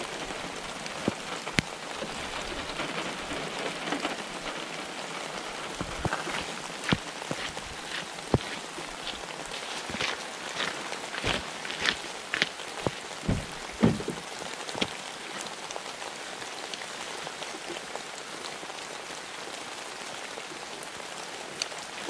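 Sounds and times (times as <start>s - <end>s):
footsteps on wet gravel: 0.0s - 15.0s
steady rain falling: 0.0s - 22.0s.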